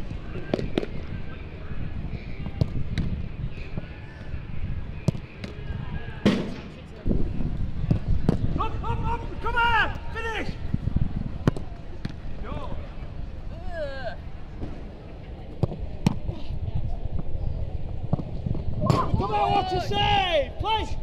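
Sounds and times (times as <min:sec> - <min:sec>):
steady outdoor rumble: 0:00.0 - 0:21.0
footballs being kicked and caught: 0:05.0 - 0:05.6, 0:07.9 - 0:08.6, 0:11.4 - 0:12.2, 0:15.5 - 0:16.4.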